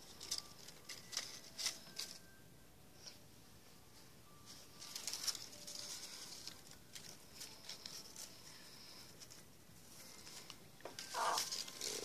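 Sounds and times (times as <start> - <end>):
paper rustling and crinkling: 0.0 - 2.4, 4.4 - 12.0.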